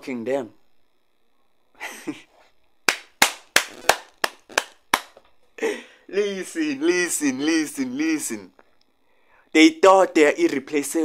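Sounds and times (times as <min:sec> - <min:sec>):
breathy laugh: 0:01.8 - 0:02.3
person clapping hands: 0:02.9 - 0:05.2.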